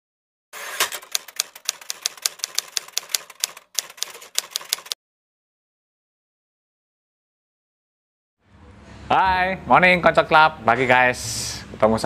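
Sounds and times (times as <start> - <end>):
typewriter key clacks: 0.8 - 5.0.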